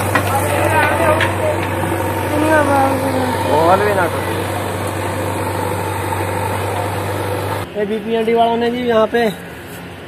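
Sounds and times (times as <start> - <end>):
diesel engine running: 0.0 - 7.8
construction site noise: 0.0 - 10.0.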